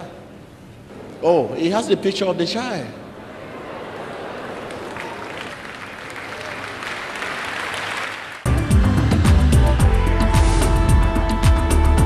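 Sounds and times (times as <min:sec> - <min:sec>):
crowd applause: 0:03.3 - 0:08.5
loud music with deep bass: 0:08.5 - 0:12.0.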